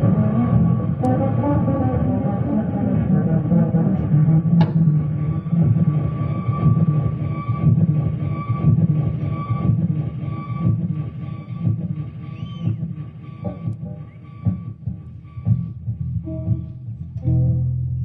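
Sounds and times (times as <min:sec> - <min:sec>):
live concert low rumble: 0:00.0 - 0:18.0
steady high pulsing tone: 0:00.0 - 0:18.0.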